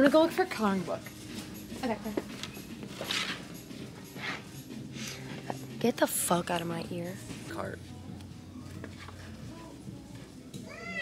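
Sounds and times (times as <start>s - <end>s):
cat meow: 10.6s - 11.0s.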